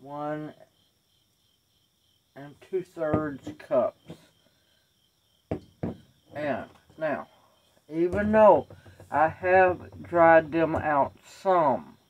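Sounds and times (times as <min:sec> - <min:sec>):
glass jar knocking on countertop: 0:05.5 - 0:06.1.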